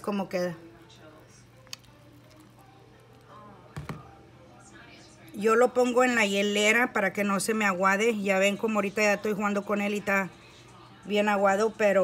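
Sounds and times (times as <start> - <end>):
plastic tub knocking on glass: 3.7 - 4.1.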